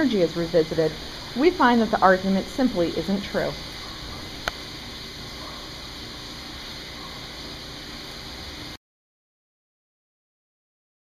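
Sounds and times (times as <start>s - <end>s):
grinder pump running: 0.0s - 8.8s.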